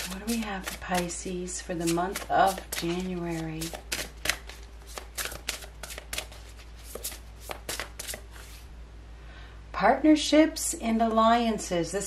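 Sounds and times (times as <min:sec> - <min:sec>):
cards being shuffled and slapped: 0:00.0 - 0:08.6.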